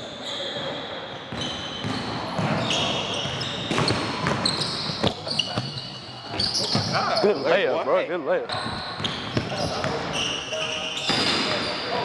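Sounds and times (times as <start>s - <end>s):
sneakers squeaking: 0.0s - 7.7s, 8.5s - 12.0s
basketball bouncing: 1.3s - 5.7s.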